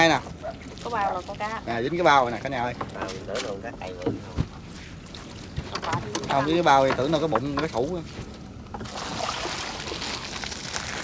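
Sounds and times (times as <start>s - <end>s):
net hauled over boat side: 0.0s - 11.0s
water dripping and splashing: 8.8s - 11.0s.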